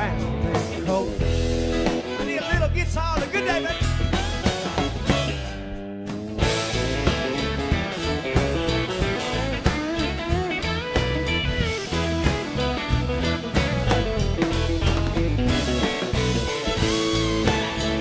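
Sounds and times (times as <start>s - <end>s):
acoustic guitar: 0.0s - 18.0s
bass guitar: 0.0s - 18.0s
drum kit steady beat: 0.0s - 18.0s
electric guitar lead lines: 0.0s - 18.0s
fiddle: 6.4s - 18.0s.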